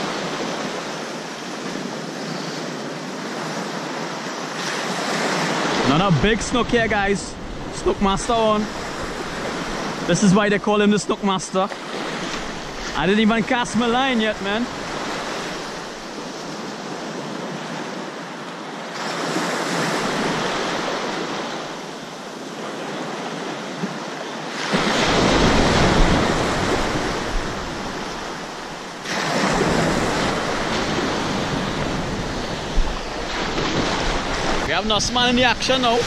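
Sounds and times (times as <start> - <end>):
ocean surf breaking: 0.0 - 36.0
wind rumble on microphone: 25.1 - 34.7.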